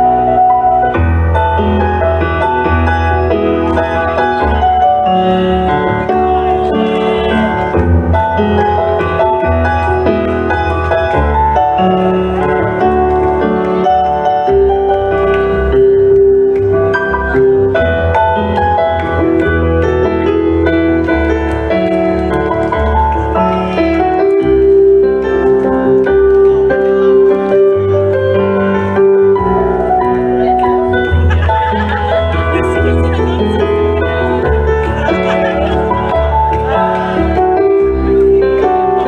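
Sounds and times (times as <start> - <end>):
piano chords and melody: 0.0 - 39.0.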